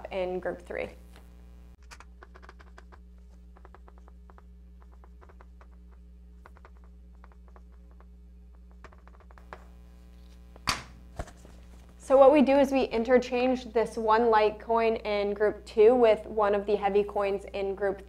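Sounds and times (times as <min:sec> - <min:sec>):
low mains hum: 0:00.0 - 0:18.0
chalk tapping on chalkboard: 0:01.9 - 0:09.6.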